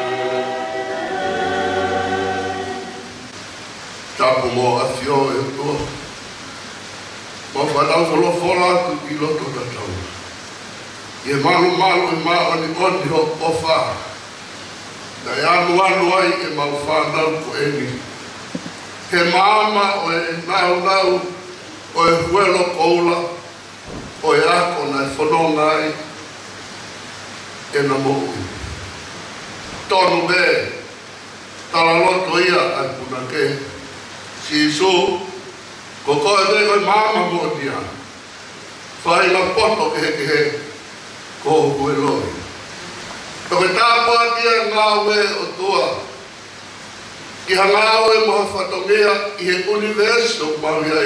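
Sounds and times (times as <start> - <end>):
steady hiss: 0.0 - 51.0
man speaking over loudspeakers: 4.2 - 6.1, 7.5 - 10.2, 11.3 - 14.2, 15.2 - 18.1, 19.1 - 23.5, 24.2 - 26.2, 27.7 - 28.8, 29.9 - 30.9, 31.7 - 35.4, 36.0 - 38.1, 39.0 - 40.8, 41.4 - 42.5, 43.5 - 46.2, 47.5 - 51.0
low thump on microphone: 18.5 - 18.8, 23.8 - 24.2.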